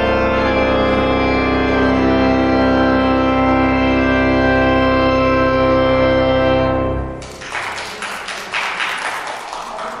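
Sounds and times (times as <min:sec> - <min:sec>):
applause: 0:07.2 - 0:10.0.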